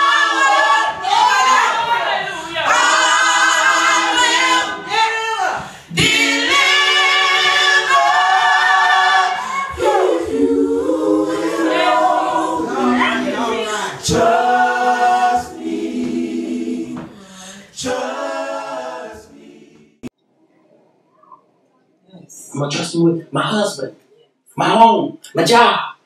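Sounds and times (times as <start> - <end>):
women singing without instruments: 5.9 - 17.2.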